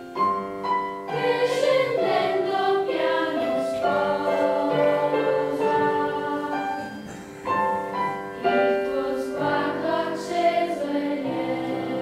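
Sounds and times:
piano accompaniment: 0.0s - 12.0s
children's choir singing: 0.7s - 12.0s.

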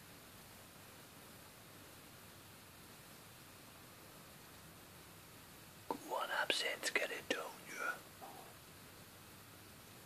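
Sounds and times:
low room hiss: 0.0s - 10.0s
person whispering: 5.9s - 8.6s.

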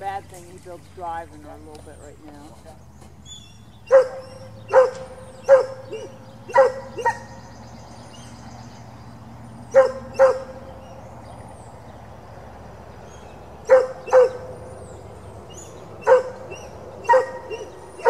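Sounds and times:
dog barking: 3.9s - 7.4s, 9.7s - 10.6s, 13.6s - 14.6s, 16.0s - 18.0s.

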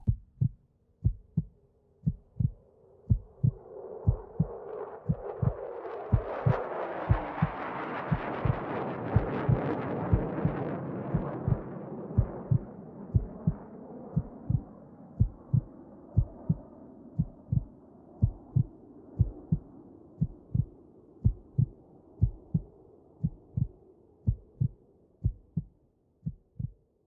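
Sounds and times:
heartbeat thumps: 0.0s - 4.5s, 5.1s - 13.6s, 14.2s - 16.6s, 17.2s - 25.7s, 26.3s - 26.8s.

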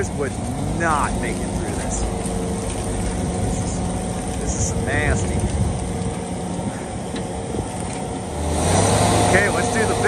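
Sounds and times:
diesel engine running: 0.0s - 10.0s.

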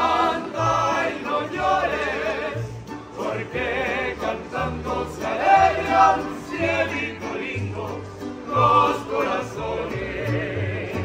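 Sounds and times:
guitars: 0.0s - 11.0s
men singing in harmony: 0.0s - 11.0s.

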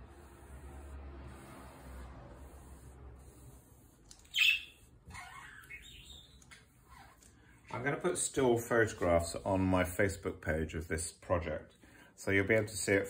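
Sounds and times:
high chirp: 4.2s - 6.4s
gliding squeaks: 4.2s - 7.2s.

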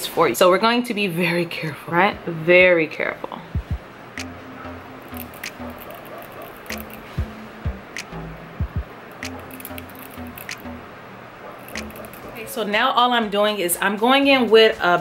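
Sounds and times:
music with low bass line: 3.6s - 6.0s, 6.6s - 10.9s
sharp clicks: 5.1s - 7.2s, 9.2s - 10.7s, 11.7s - 12.4s.

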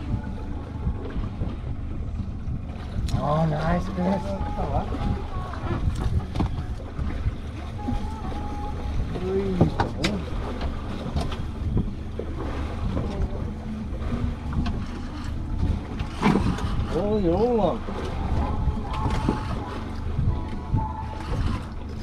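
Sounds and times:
water noise: 0.0s - 22.0s
wind: 0.0s - 22.0s.

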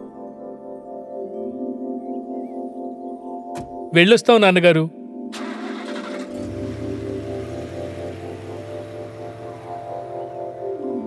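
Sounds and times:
sustained chords music: 0.0s - 11.0s.

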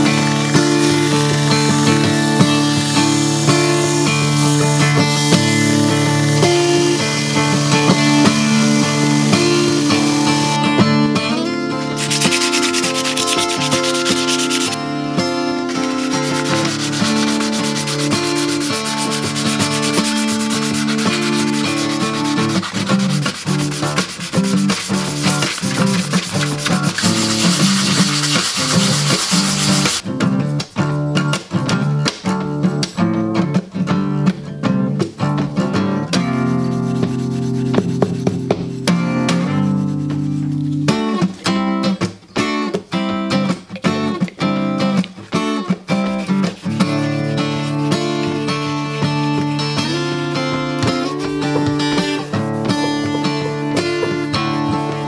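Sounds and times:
sanding metal blade: 0.0s - 10.7s, 11.9s - 14.8s, 15.7s - 30.0s, 36.4s - 38.1s
acoustic guitar music: 0.0s - 55.0s.

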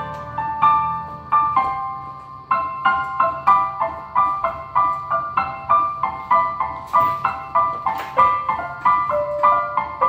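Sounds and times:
digital piano playing bell-like chords: 0.0s - 10.0s.

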